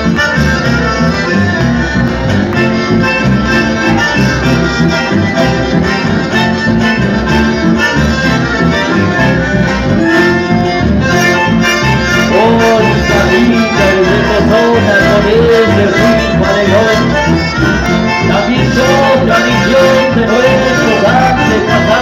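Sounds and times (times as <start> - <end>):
accordion and bandoneon melody: 0.0 - 22.0
electric bass: 0.0 - 22.0
guitars: 0.0 - 22.0.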